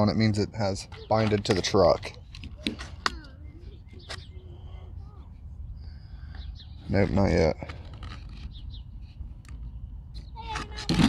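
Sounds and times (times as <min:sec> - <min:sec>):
birds chirping: 0:00.0 - 0:10.9.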